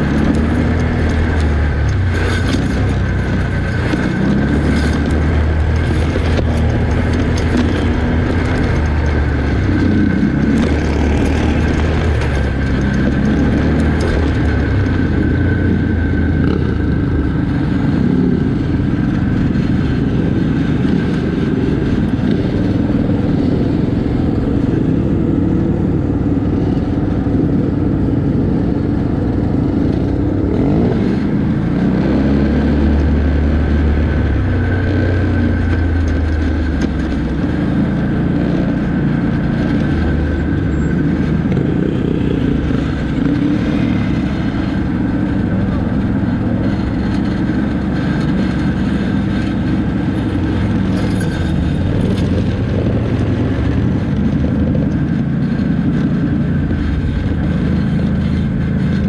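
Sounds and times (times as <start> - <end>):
quad bike engines revving: 0.0 - 59.0.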